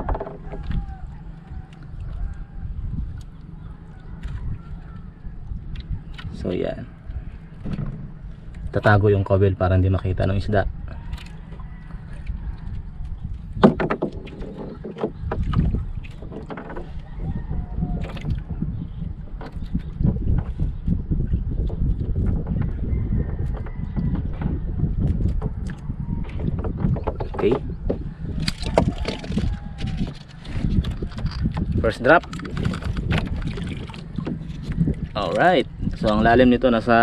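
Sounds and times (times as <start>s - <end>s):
knocks on boat: 0.0s - 0.9s, 7.6s - 8.2s, 13.6s - 18.7s, 21.7s - 29.8s
steady low rumble: 0.0s - 37.0s
water lapping against boat hull: 0.0s - 37.0s.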